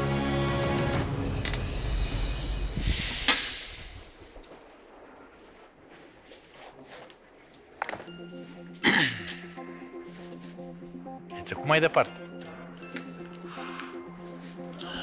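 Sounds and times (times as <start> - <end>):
dramatic suspense music: 0.0 - 4.3, 8.1 - 15.0.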